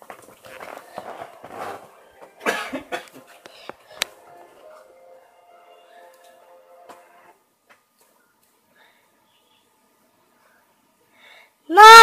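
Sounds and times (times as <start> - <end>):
person coughing: 2.4 - 3.2.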